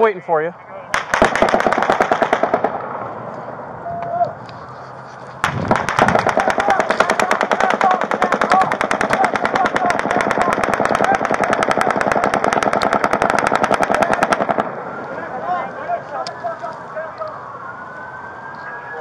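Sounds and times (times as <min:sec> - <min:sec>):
automatic rifle fire: 0:00.9 - 0:03.0, 0:05.4 - 0:14.7
siren wailing: 0:02.5 - 0:19.0.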